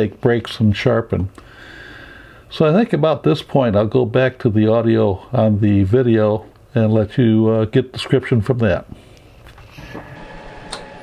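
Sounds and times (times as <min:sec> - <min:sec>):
sharp click: 0:10.7 - 0:11.0.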